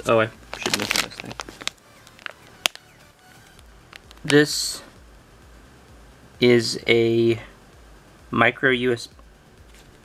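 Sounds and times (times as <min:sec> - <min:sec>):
plastic bag crinkling: 0:00.4 - 0:02.9.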